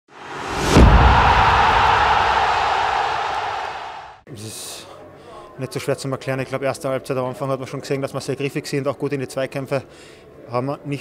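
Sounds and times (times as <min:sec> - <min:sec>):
noisy wash of intro sting: 0:00.1 - 0:04.2.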